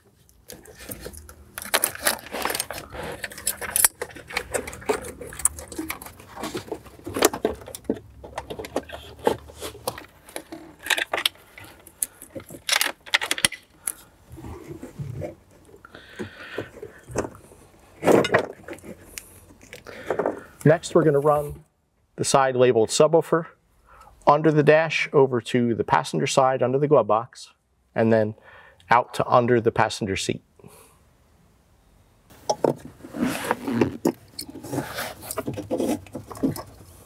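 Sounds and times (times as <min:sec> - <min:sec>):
cables rustling: 0:00.2 - 0:20.8
plastic connectors clattering: 0:00.5 - 0:14.0.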